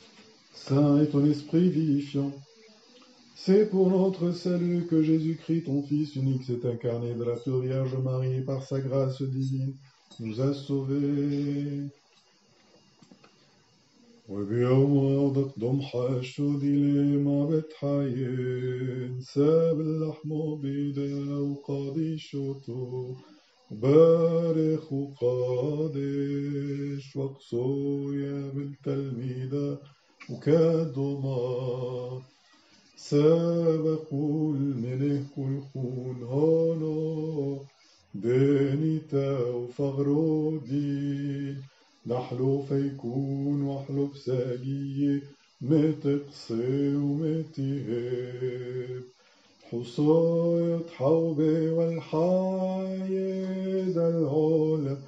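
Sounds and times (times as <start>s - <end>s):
man chanting in long held notes: 0.4s - 12.1s, 14.0s - 55.0s.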